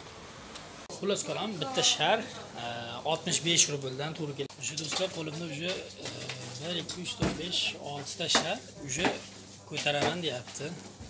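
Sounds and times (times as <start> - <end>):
indistinct voices: 5.7 - 7.8.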